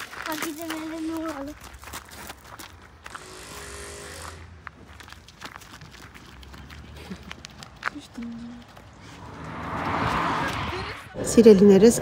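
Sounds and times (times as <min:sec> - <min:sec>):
vehicle passing on road: 0:02.8 - 0:12.0.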